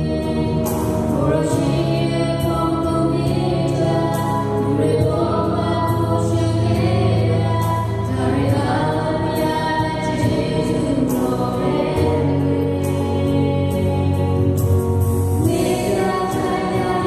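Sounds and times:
group singing a hymn: 0.0s - 17.0s.

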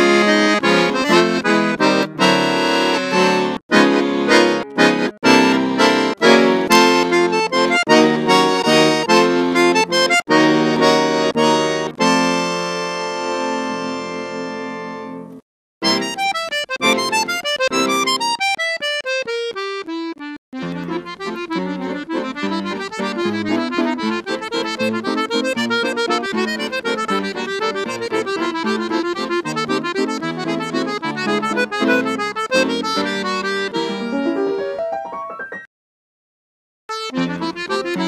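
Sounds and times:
accordion waltz: 0.0s - 34.8s, 36.9s - 38.0s.

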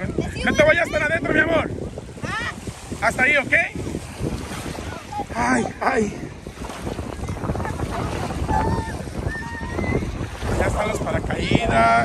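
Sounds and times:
small waves washing: 0.0s - 12.0s
wind buffeting microphone: 0.0s - 12.0s.

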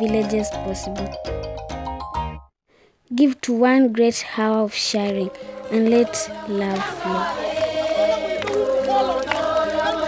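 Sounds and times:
choir singing: 5.1s - 10.0s.

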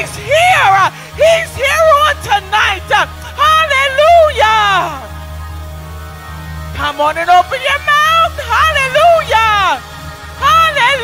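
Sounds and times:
low musical accompaniment: 0.0s - 11.0s.

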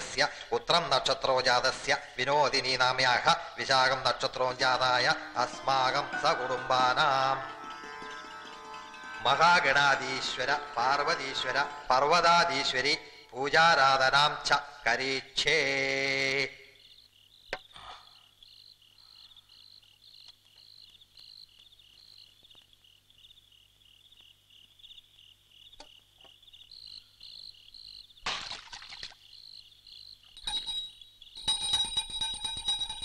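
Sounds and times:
crickets chirping: 0.0s - 33.0s
music with bell-like tones: 4.8s - 12.7s, 30.4s - 33.0s.

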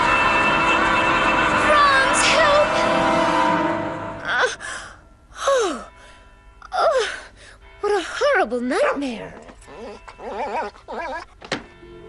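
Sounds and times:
soft background music: 1.6s - 12.0s.

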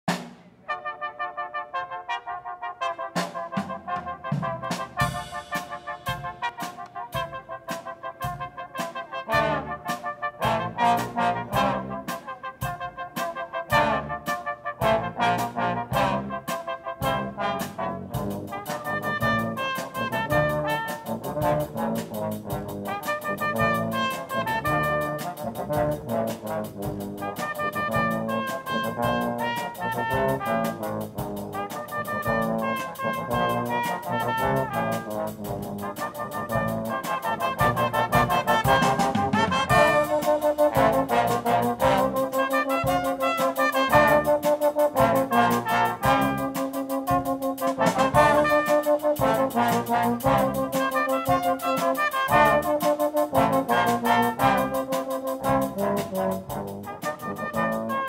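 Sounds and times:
brass band playing: 0.1s - 58.0s.

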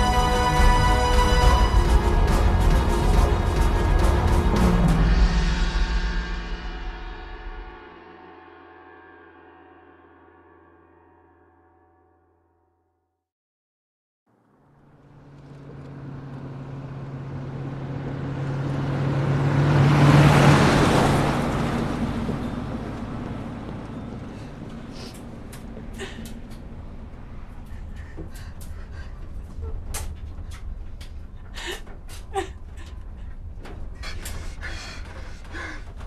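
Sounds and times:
deep gong-like hit ringing: 4.6s - 12.4s
van engine: 14.3s - 36.0s.

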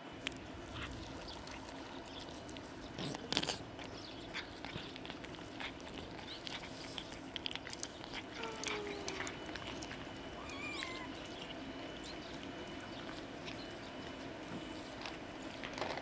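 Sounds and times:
cats chewing food: 0.0s - 16.0s.

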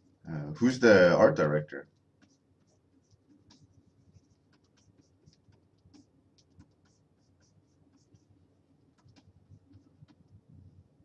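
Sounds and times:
stylus scratching on tablet: 1.8s - 10.8s.

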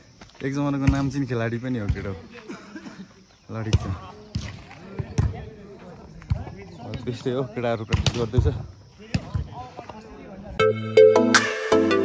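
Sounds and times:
people talking: 0.4s - 10.7s.

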